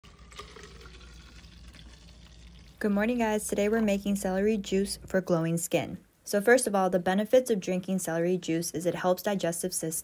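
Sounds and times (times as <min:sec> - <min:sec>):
juice pouring into plastic cup: 0:00.0 - 0:04.0.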